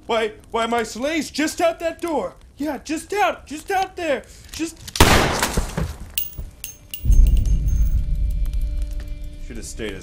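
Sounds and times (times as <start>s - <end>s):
glassy crash: 6.2s - 8.0s
dark music with low rumble: 6.6s - 10.0s.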